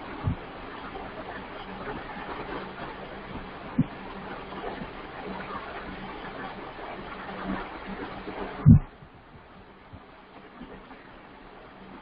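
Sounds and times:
faint electrical hum: 0.0s - 12.0s
microphone hiss: 0.0s - 12.0s
short low thump: 8.6s - 9.0s.

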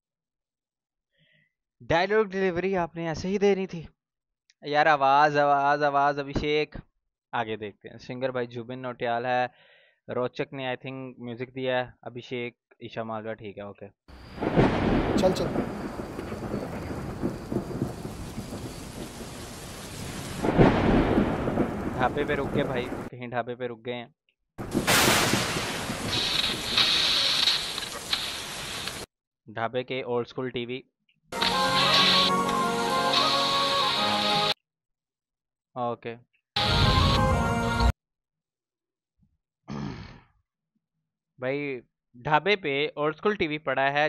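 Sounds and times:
rumbling thunder: 14.3s - 23.1s, 24.6s - 28.0s
steady rain: 14.3s - 23.1s, 24.6s - 29.1s
man's breathy grunt: 39.7s - 40.3s.

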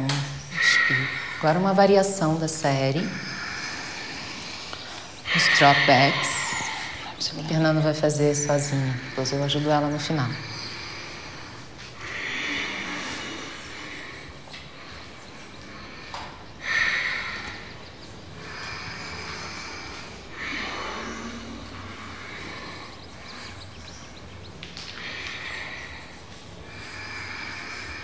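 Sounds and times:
deep hissing breathing: 0.4s - 28.0s.

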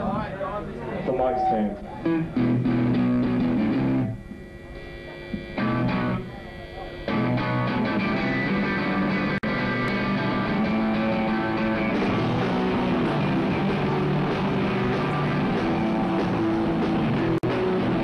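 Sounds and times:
rock band playing live: 2.0s - 4.2s, 5.6s - 6.2s, 7.1s - 18.0s.

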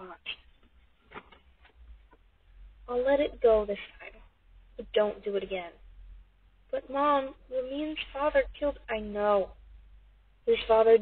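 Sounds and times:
person speaking: 0.0s - 0.5s, 2.8s - 4.2s, 4.8s - 5.8s, 6.7s - 9.6s, 10.4s - 11.0s
faint low hum: 0.0s - 11.0s.

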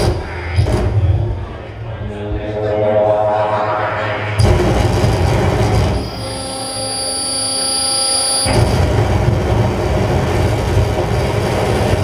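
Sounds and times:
low hum: 0.0s - 6.9s
droning buzzing tone: 0.0s - 11.9s.

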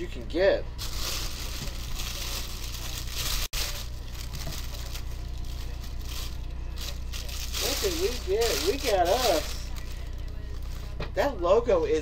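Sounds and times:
plastic bag crinkling: 0.8s - 10.9s.

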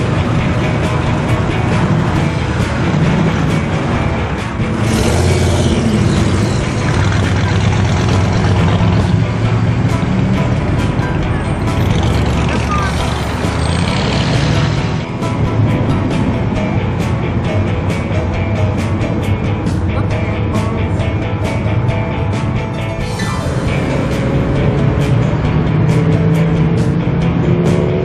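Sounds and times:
car engines rumbling: 0.0s - 28.0s
music: 0.0s - 28.0s
voices: 10.9s - 13.8s.

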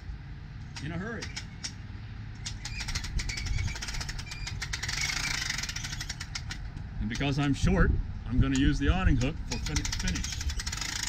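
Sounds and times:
awning roller retracting with rattling clicks: 2.4s - 7.4s, 8.6s - 11.0s.

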